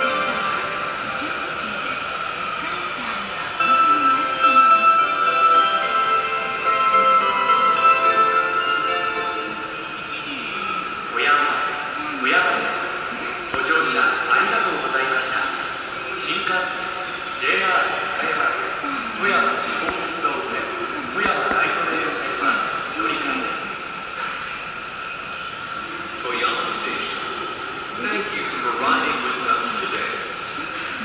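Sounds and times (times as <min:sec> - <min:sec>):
chime melody over loudspeakers: 0:00.0 - 0:02.0, 0:02.6 - 0:12.6
spoken announcement over loudspeakers: 0:00.0 - 0:05.6, 0:08.6 - 0:24.0, 0:25.8 - 0:31.0.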